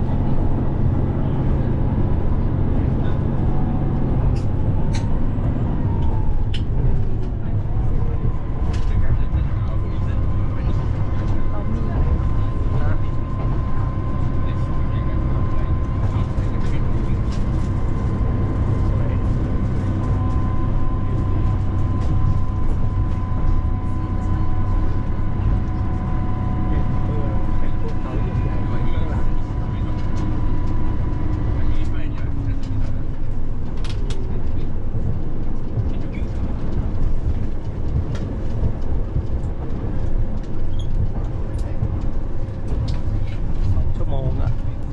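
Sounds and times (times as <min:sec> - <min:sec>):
train rumbling: 0:00.0 - 0:44.9.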